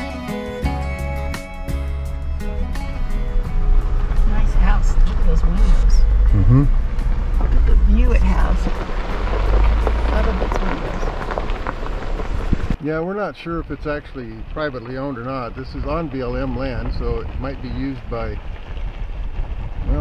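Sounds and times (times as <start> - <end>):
vehicle engine rumble: 0.0 - 20.0
tyres on gravel: 2.2 - 20.0.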